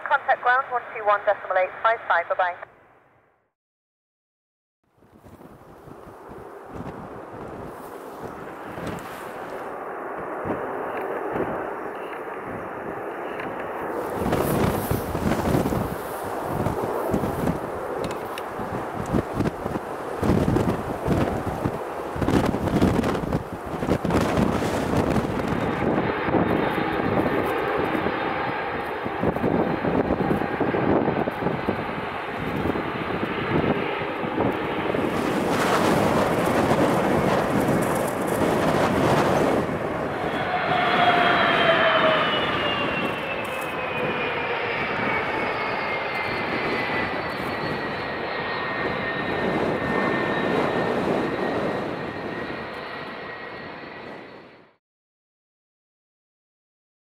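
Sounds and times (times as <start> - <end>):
jet engines roaring: 0.0 - 2.6, 5.5 - 54.8
wind on microphone: 5.0 - 54.3
high engine whine: 5.7 - 54.8.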